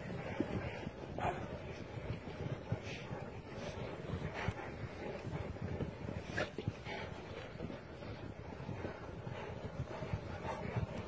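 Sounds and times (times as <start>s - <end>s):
low rustling in snow: 0.0s - 11.0s.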